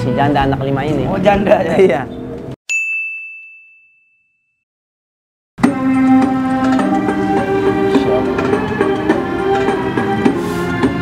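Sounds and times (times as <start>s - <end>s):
high bell-like ding: 2.7s - 4.6s.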